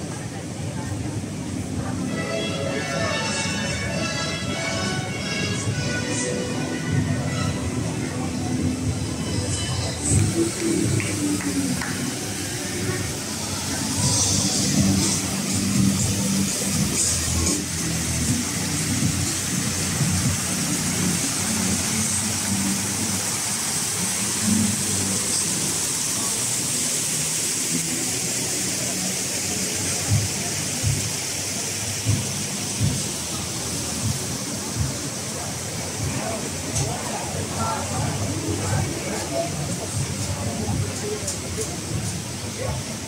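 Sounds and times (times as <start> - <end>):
fountain water splashing: 0.0 - 43.0
murmur of voices: 0.0 - 43.0.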